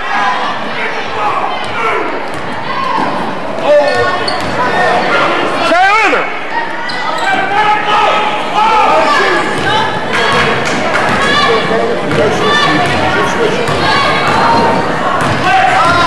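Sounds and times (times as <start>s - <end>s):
people shouting in echoing hall: 0.0s - 16.0s.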